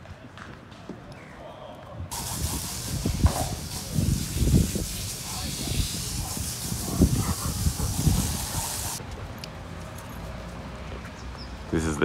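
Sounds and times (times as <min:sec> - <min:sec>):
steady hiss: 0:02.1 - 0:09.0.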